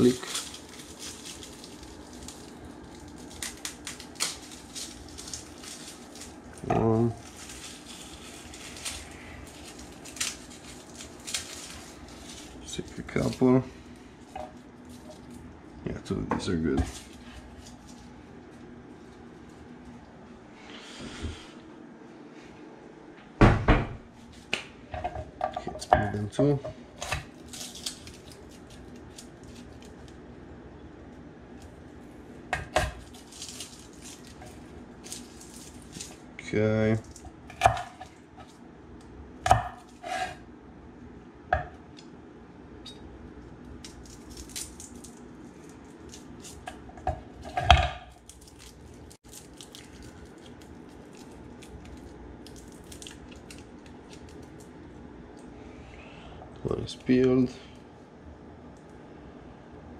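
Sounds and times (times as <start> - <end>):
rustling garlic skins: 0.0 - 21.4, 26.1 - 30.4, 31.0 - 40.5, 43.1 - 55.9.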